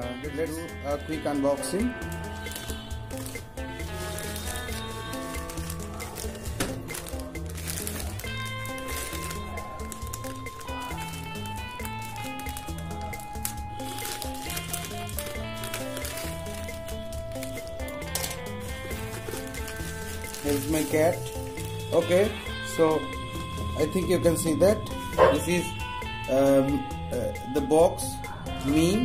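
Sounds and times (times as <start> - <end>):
melody of held notes: 0.0 - 29.0.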